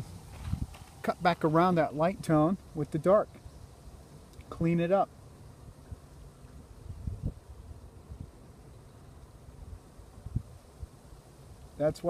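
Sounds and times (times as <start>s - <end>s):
wind buffeting microphone: 0.0s - 1.4s, 6.7s - 8.4s, 9.6s - 11.0s.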